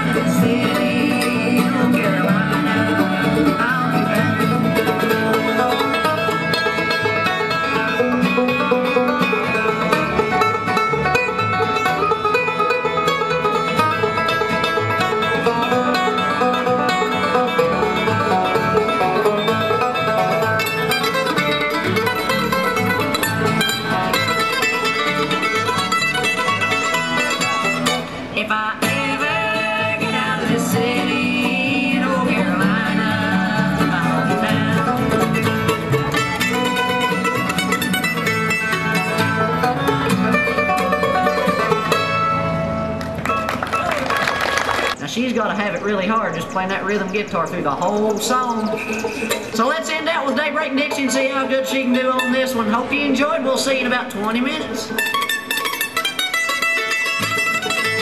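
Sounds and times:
banjo: 0.0s - 45.0s, 45.7s - 58.0s
bluegrass band playing: 0.0s - 58.0s.

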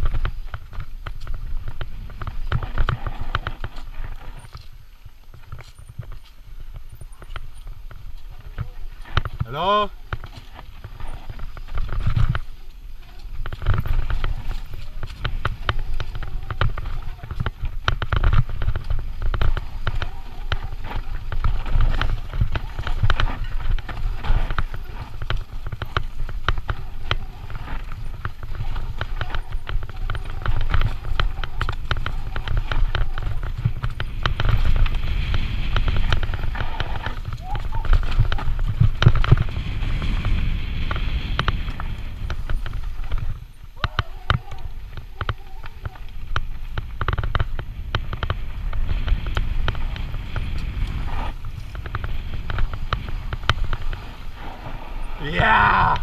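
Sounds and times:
bike rattling and clicking: 0.0s - 56.0s
tyres rolling over dirt and stones: 0.0s - 56.0s
wind on microphone: 0.0s - 56.0s.

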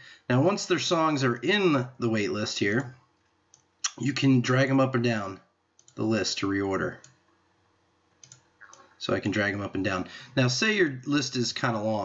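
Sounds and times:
faint computer mouse clicks: 8.2s - 8.9s.

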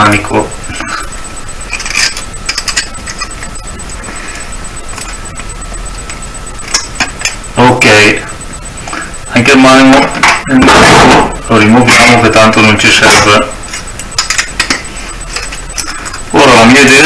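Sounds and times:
pliers clicking and scraping wire: 1.7s - 3.6s.

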